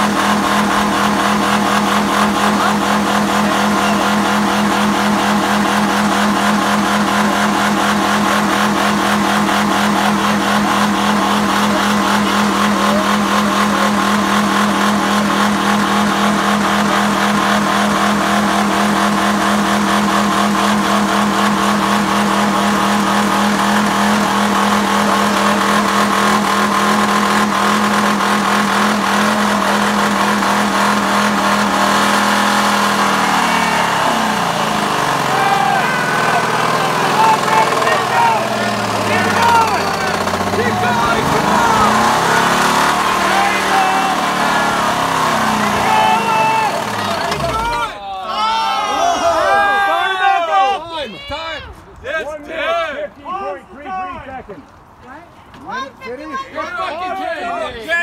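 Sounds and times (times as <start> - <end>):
car engine revving high: 0.0 - 48.0.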